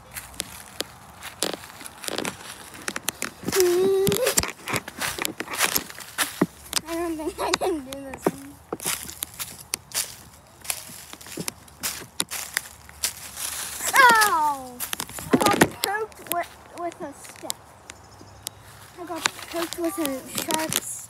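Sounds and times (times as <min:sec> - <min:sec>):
footsteps crunching dry leaves: 0:00.0 - 0:21.0
wordless voice sounds: 0:06.7 - 0:08.6, 0:13.7 - 0:17.7, 0:18.9 - 0:21.0.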